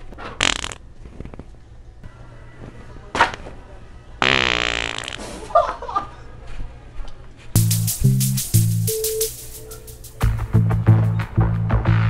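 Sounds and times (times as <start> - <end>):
fart toy noises: 0.2 - 0.8, 4.2 - 5.4.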